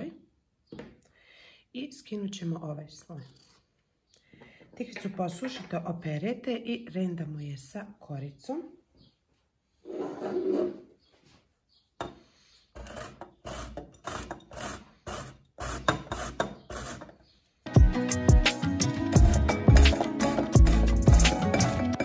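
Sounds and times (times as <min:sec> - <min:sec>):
zucchini grated on metal grater: 0:12.8 - 0:17.2
background music: 0:17.7 - 0:22.0.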